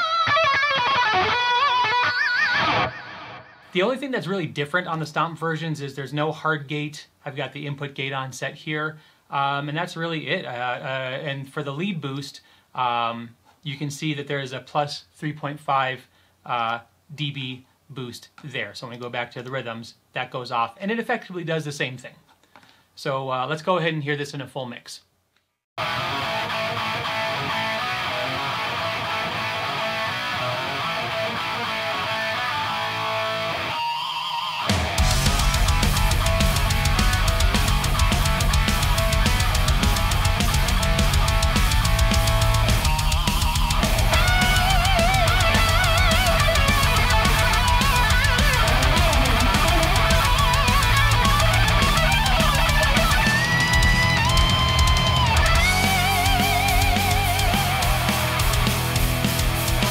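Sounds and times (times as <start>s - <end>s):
distorted electric guitars: 0.0s - 3.8s, 25.8s - 59.9s
drums and bass: 34.7s - 59.9s.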